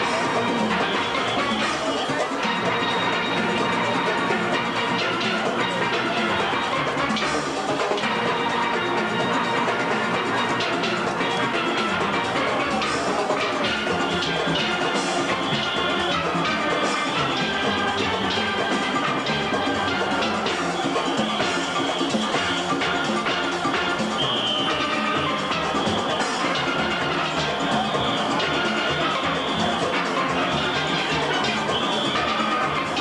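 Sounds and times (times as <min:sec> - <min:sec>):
steel band playing: 0:00.0 - 0:33.0.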